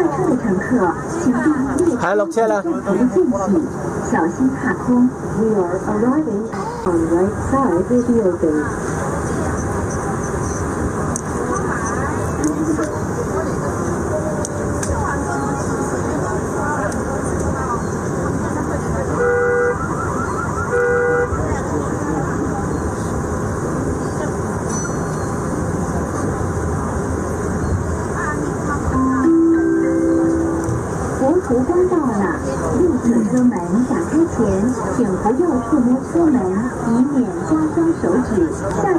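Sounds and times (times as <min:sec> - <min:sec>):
faint voices: 0:00.0 - 0:38.9
metro train running noise: 0:00.0 - 0:38.9.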